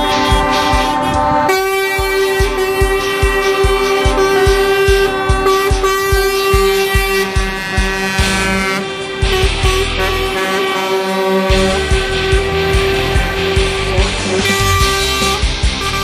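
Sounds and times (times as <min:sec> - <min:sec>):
long held chords: 0:00.0 - 0:16.0
music with thumping beat: 0:00.0 - 0:16.0.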